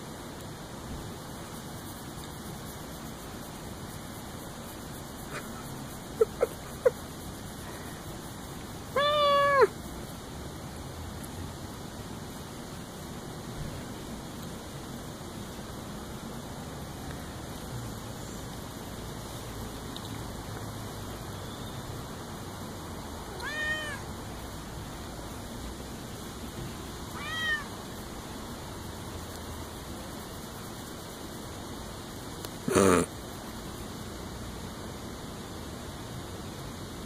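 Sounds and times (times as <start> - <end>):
cat meowing: 8.9 - 9.7, 23.3 - 24.1, 27.1 - 27.7.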